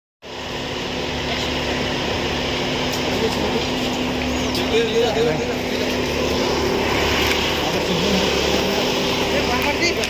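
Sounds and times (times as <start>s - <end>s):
engine humming: 0.2s - 10.0s.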